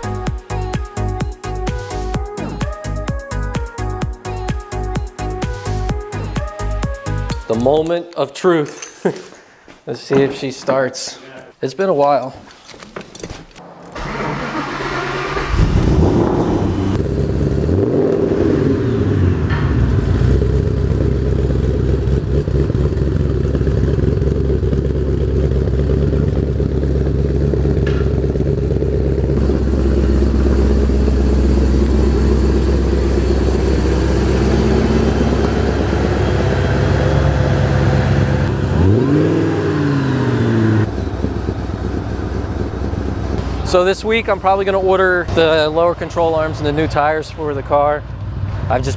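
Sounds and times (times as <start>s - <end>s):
car engine idling: 13.6s - 48.9s
car engine starting and revving: 13.6s - 48.9s.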